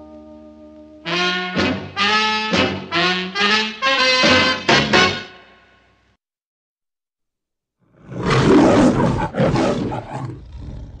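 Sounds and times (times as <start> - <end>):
lion roaring: 7.9 - 11.0.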